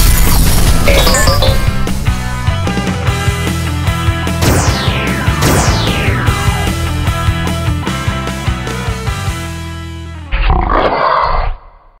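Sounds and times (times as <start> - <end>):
rock chord: 1.6 - 10.3
bear roar: 10.3 - 11.8.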